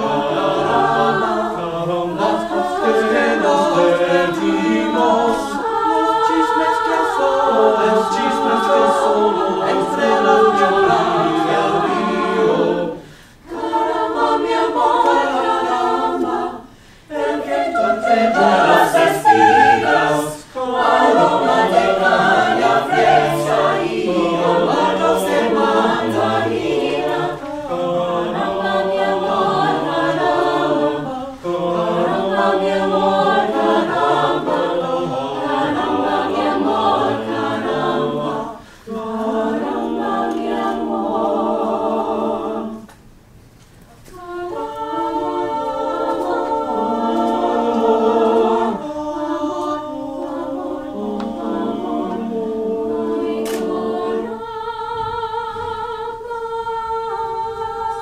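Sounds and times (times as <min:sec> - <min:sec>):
mixed choir singing a cappella: 0:00.0 - 0:43.0, 0:44.0 - 0:58.0.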